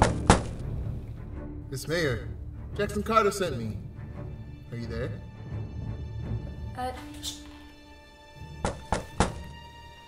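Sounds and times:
soft background music: 0.0s - 10.0s
knocks on wooden door: 8.6s - 9.5s.

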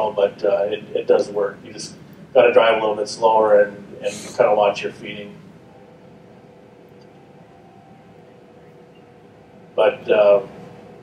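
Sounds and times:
low even hiss: 0.0s - 5.6s
faint steady hum: 0.0s - 11.0s.

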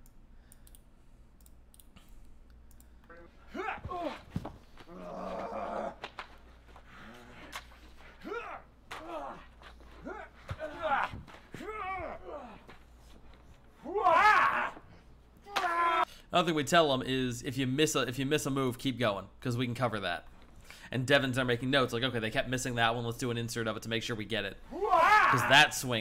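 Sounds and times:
people shouting and grunting: 3.1s - 6.2s, 6.9s - 12.8s, 13.8s - 16.1s, 24.7s - 25.8s
person yelling: 3.5s - 4.2s, 13.9s - 14.8s, 24.7s - 25.8s.

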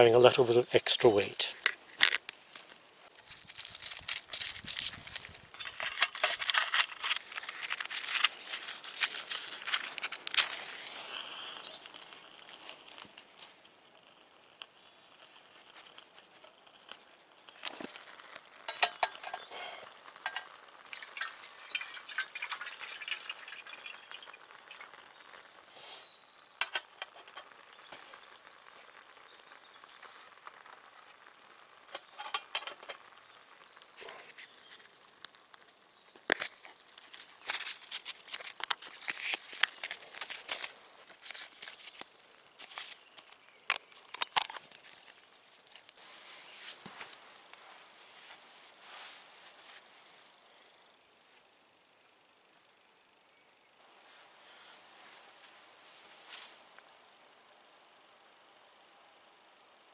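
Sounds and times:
outdoor background: 0.0s - 59.9s
paper filters rustling: 1.1s - 13.5s, 36.3s - 43.4s
water pouring into tin: 18.6s - 25.7s
metal tin clanking on stove: 18.7s - 19.5s, 20.2s - 24.0s, 32.0s - 32.9s
plastic clicks: 42.7s - 45.2s.

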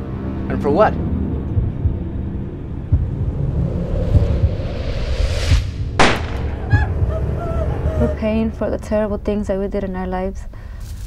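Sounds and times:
low rumbling drone: 0.0s - 10.6s
deep thumps: 1.4s - 4.8s
rising whoosh: 1.6s - 7.4s
sharp hit: 5.1s - 7.1s.

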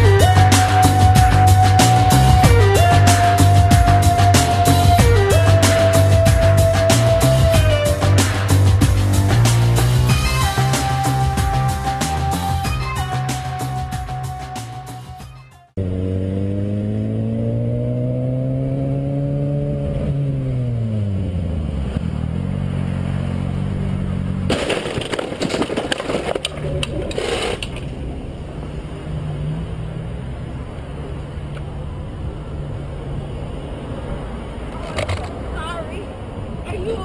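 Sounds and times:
motorcycle engine accelerating: 0.0s - 14.7s, 15.8s - 24.7s
crash with scraping and clattering: 24.4s - 27.9s.

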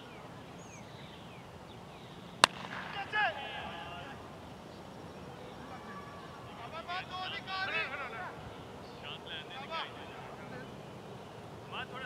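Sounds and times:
cricket bat hitting ball: 2.4s - 3.2s.

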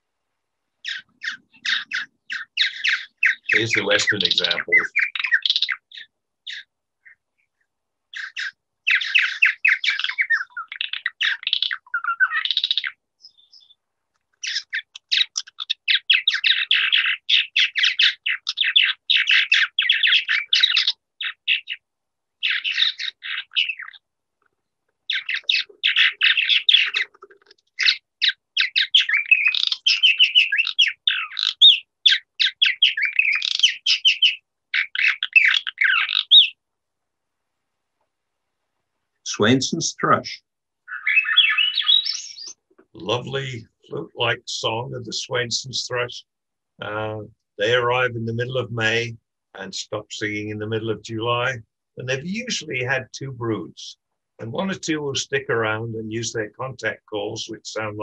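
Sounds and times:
birds chirping and gurgling: 0.7s - 36.7s, 39.3s - 58.0s.

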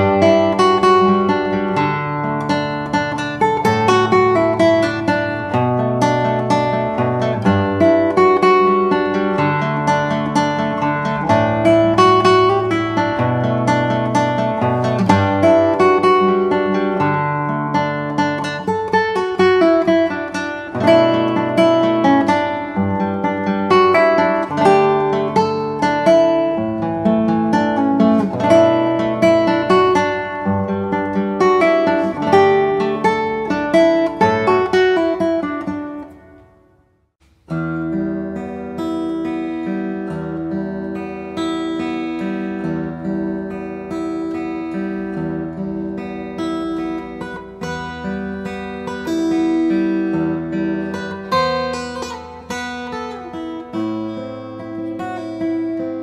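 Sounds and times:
acoustic guitar fingerpicked arpeggio: 0.0s - 56.0s
classical guitar fingerstyle piece: 0.0s - 56.0s.

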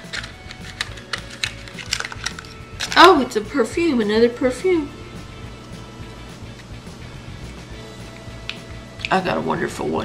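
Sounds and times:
small packages clicking and tapping: 0.0s - 3.1s.

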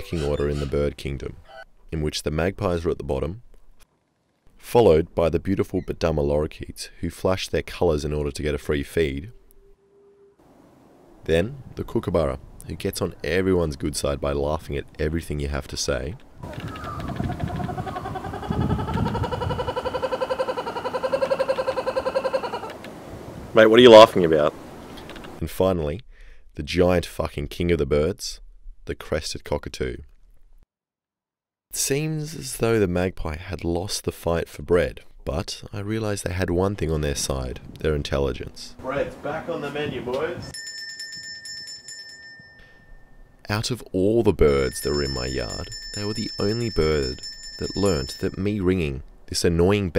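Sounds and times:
kookaburra laughing call: 16.6s - 22.7s
metal hand bell ringing: 40.5s - 43.3s, 44.6s - 48.4s.

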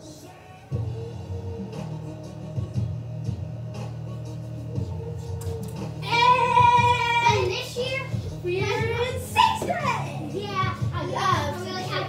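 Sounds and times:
recorded music: 0.0s - 12.0s
girls singing and calling out: 5.4s - 12.0s.

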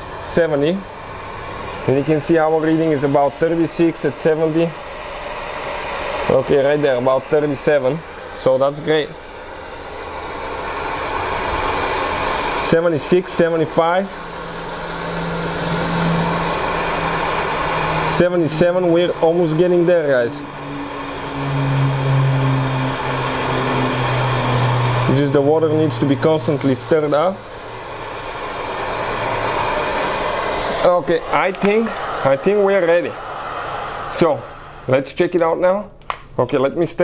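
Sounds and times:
camp stove burner flame rushing: 0.0s - 35.0s.

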